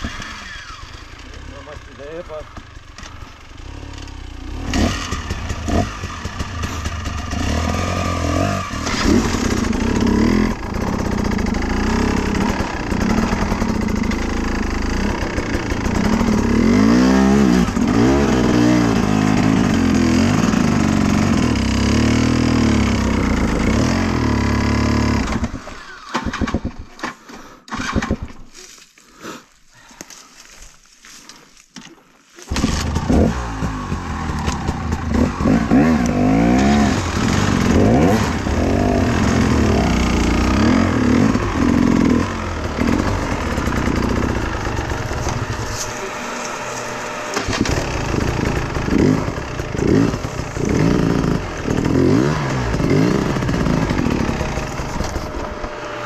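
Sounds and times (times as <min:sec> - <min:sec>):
dirt bike engine revving: 0:00.0 - 0:26.8, 0:32.5 - 0:56.0.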